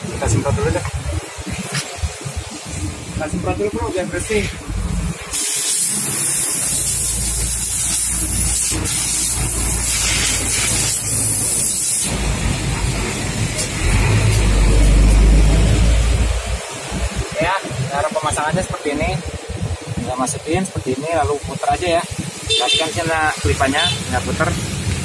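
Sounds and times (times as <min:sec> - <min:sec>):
air blow gun hissing: 0:04.2 - 0:15.5
low rumble: 0:12.1 - 0:17.3.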